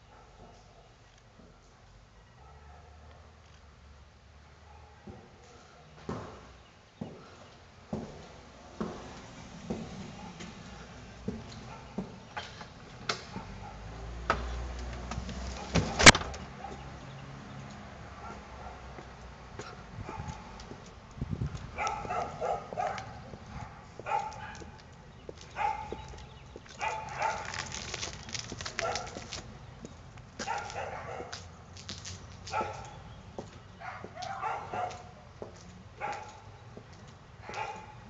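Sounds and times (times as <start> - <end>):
dog barking: 0.0 - 1.0, 2.4 - 3.4, 4.6 - 6.0, 10.1 - 10.5, 11.6 - 12.0, 13.2 - 14.0, 16.6 - 16.9, 18.2 - 19.0, 19.6 - 20.6, 21.8 - 24.8, 25.5 - 26.2, 26.8 - 27.7, 28.8 - 29.3, 30.4 - 31.5, 32.5 - 33.0, 33.8 - 35.2, 36.0 - 36.6, 37.4 - 38.0.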